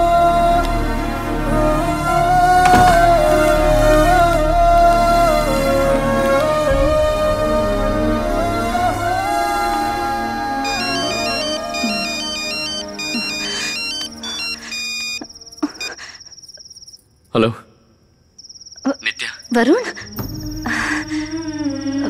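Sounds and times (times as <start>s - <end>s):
soft background music: 0.0s - 15.2s, 20.0s - 22.0s
electronic ringtone melody: 10.6s - 16.0s
high trilling phone ring: 10.6s - 17.0s.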